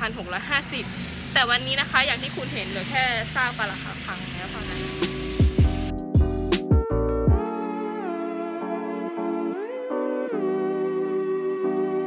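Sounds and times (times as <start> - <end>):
woman speaking: 0.0 - 5.2
background music: 0.0 - 12.0.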